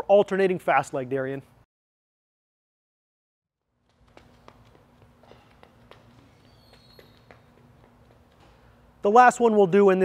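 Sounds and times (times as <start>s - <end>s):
soft footsteps on rubber track: 3.8s - 8.9s.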